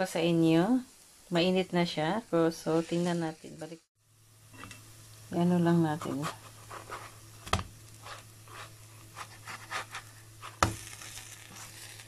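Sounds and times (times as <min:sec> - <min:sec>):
faint frying sizzle: 0:00.0 - 0:12.0
spatula scraping frying pan: 0:06.0 - 0:07.3, 0:07.9 - 0:12.0.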